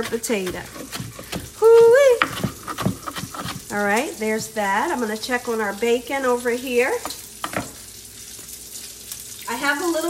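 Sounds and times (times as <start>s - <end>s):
bacon sizzling in a skillet: 0.0s - 10.0s.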